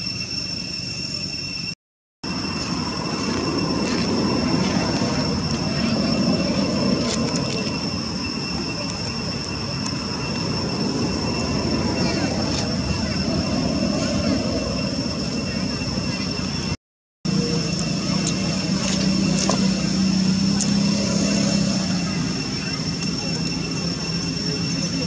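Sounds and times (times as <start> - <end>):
high-pitched whine: 0.0 - 25.0.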